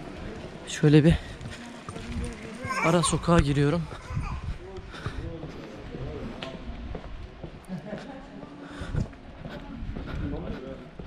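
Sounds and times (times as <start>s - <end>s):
distant people talking: 0.0s - 11.0s
footsteps on paved street: 0.0s - 11.0s.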